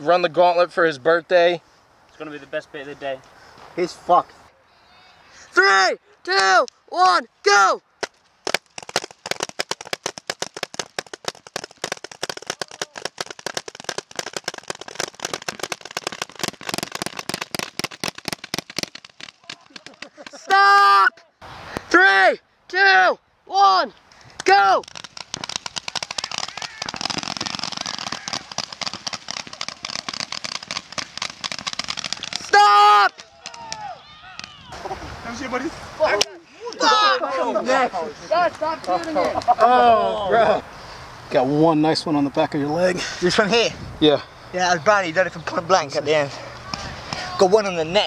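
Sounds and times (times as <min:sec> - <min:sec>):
paintball guns firing rapidly: 0:08.5 - 0:20.4, 0:24.8 - 0:32.6
loud yells: 0:20.3 - 0:23.9, 0:26.1 - 0:27.1, 0:27.8 - 0:28.5, 0:32.3 - 0:34.8, 0:36.8 - 0:37.7.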